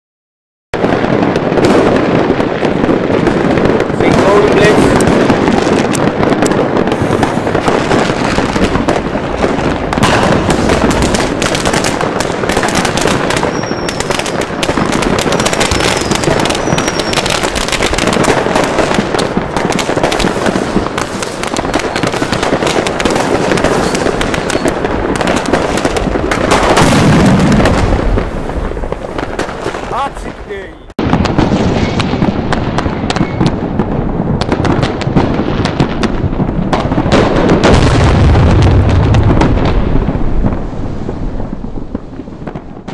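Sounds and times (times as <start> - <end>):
fireworks banging and crackling: 0.8 - 42.9
falling firework whistles: 6.8 - 7.9, 13.0 - 18.0, 23.6 - 24.8, 33.0 - 33.6.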